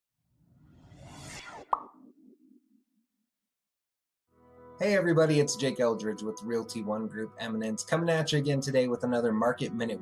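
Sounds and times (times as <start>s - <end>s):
whoosh: 0.5s - 1.8s.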